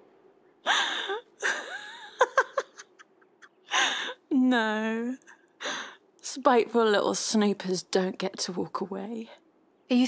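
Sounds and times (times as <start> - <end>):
woman laughing breathily: 0.7 - 4.2.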